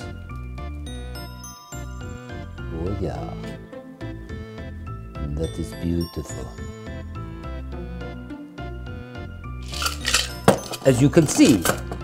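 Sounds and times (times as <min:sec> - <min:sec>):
background music: 0:00.0 - 0:12.0
ice rattling in cocktail shaker: 0:09.6 - 0:11.6.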